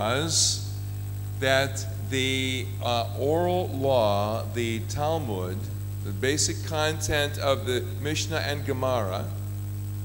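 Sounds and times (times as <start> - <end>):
electrical mains hum: 0.0 - 10.0
person speaking: 1.4 - 9.4.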